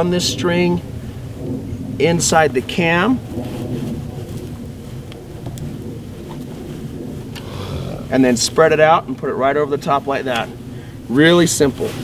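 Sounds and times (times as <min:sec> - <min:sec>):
low steady rumble: 0:00.0 - 0:11.7.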